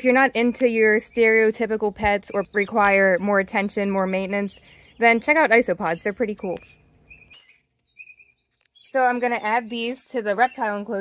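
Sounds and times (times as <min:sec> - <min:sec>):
small bird chirping: 0:00.6 - 0:11.0.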